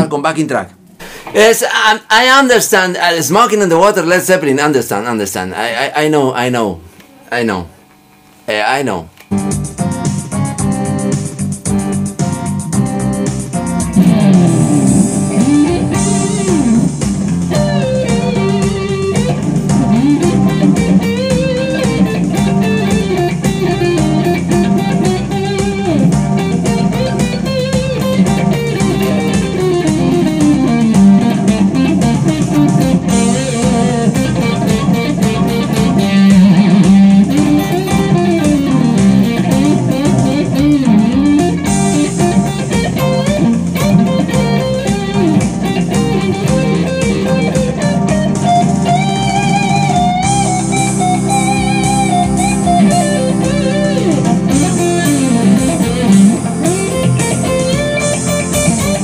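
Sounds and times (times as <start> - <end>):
rock backing track: 9.2 - 59.0
electric guitar solo: 13.7 - 59.0.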